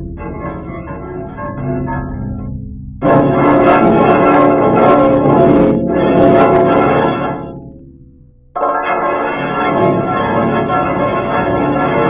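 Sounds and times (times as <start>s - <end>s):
distorted music tones: 0.0s - 12.0s.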